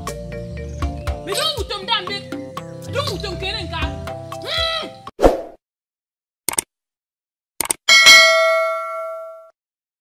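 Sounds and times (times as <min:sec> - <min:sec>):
notification bell ding: 0:07.9 - 0:09.5.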